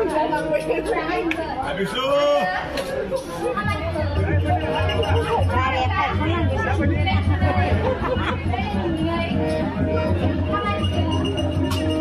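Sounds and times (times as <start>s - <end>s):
music playing: 0.0s - 12.0s.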